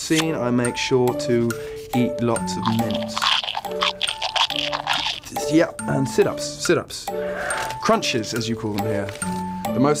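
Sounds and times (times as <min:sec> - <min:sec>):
background music: 0:00.0 - 0:10.0
mints crunching while chewed: 0:02.6 - 0:05.4.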